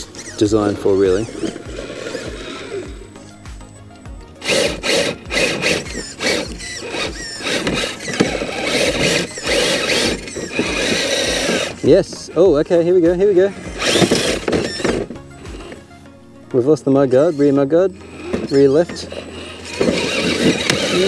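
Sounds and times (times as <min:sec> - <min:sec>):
electric motor whining under load: 0:00.0 - 0:12.4, 0:13.1 - 0:16.2, 0:16.8 - 0:21.0.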